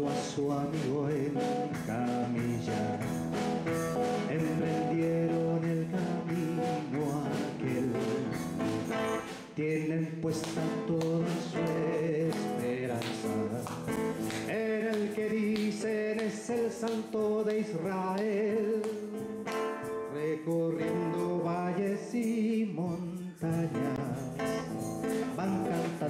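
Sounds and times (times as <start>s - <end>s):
man singing worship song: 0.0s - 3.2s, 4.2s - 8.5s, 9.4s - 19.2s, 20.0s - 26.0s
acoustic guitar strumming: 0.0s - 26.0s.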